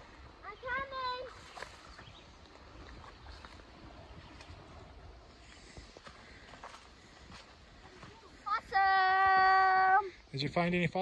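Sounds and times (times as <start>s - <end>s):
faint footsteps: 0.0s - 9.9s
rustling of brush and twigs: 0.0s - 10.0s.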